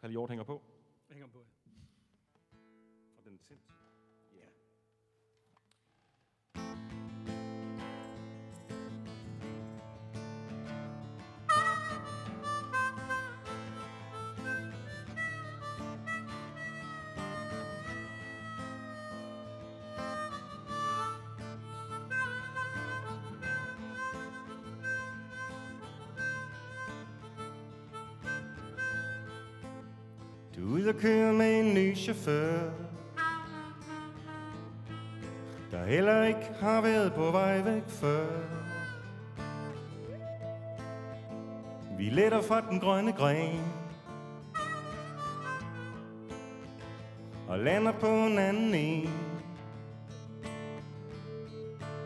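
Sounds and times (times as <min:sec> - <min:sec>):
acoustic guitar strumming: 0:06.6 - 0:52.0
harmonica melody: 0:06.6 - 0:52.0.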